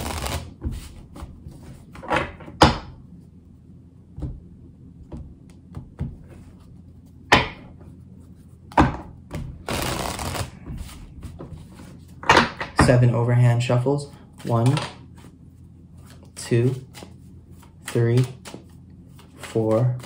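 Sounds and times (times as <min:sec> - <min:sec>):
cards being shuffled: 0:00.0 - 0:02.0, 0:09.6 - 0:12.2, 0:16.0 - 0:20.0.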